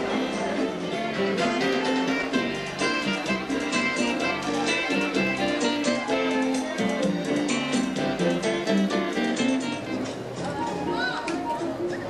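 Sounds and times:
band playing dance music: 0.0s - 11.8s.

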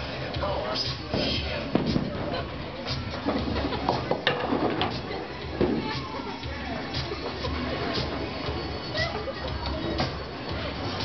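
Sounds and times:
bowling pins clattering: 3.1s - 5.9s.

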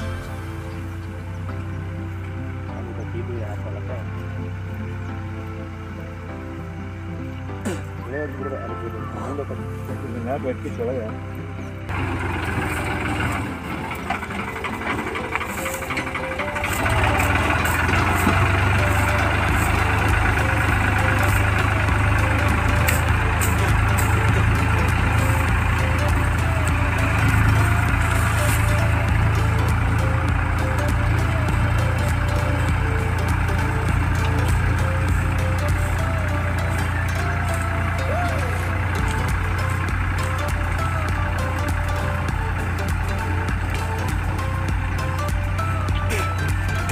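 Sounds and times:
tractor diesel engine under load: 0.0s - 46.9s
blade dragging through soil: 11.9s - 38.0s.

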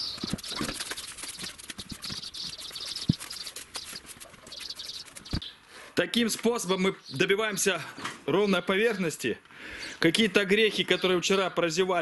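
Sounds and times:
broom sweeping concrete: 0.2s - 5.4s.

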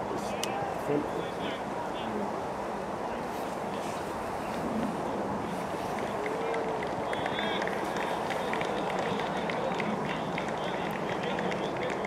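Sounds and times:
people clapping hands: 5.9s - 12.0s.

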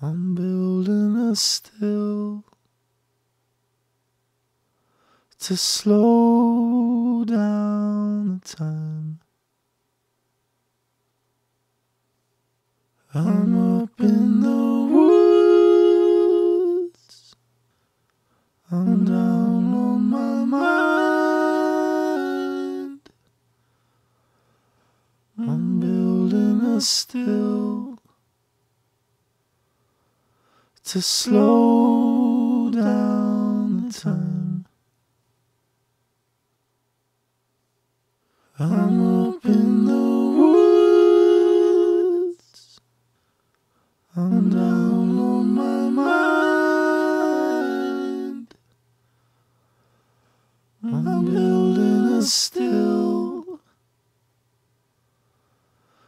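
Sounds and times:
men singing a cappella: 0.0s - 2.4s, 5.4s - 9.2s, 13.1s - 17.3s, 18.7s - 23.1s, 25.4s - 28.0s, 30.8s - 34.7s, 38.6s - 42.8s, 44.1s - 48.6s, 50.8s - 53.7s.

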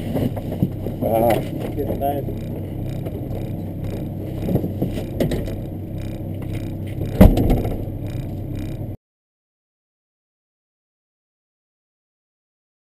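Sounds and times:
car engine idling: 0.0s - 9.0s
knocks and rattles inside car: 0.0s - 9.0s
sharp thump: 7.0s - 8.2s.

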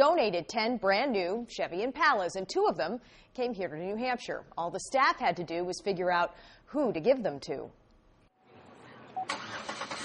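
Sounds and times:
car engine cranking and starting: 9.2s - 10.0s.

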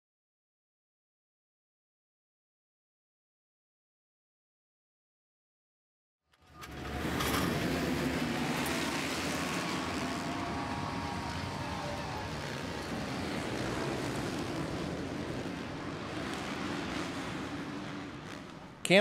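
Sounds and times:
motorcycles racing: 6.4s - 19.0s.

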